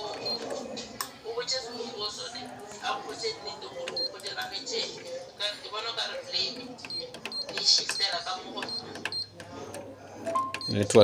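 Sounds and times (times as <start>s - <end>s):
quiet indistinct talking: 0.0s - 11.0s
short high-pitched beeps: 10.3s - 10.9s.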